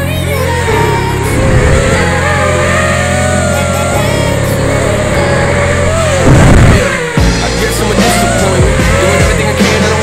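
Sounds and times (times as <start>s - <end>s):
background music with bass line: 0.0s - 10.0s
drone motors whining: 0.0s - 10.0s.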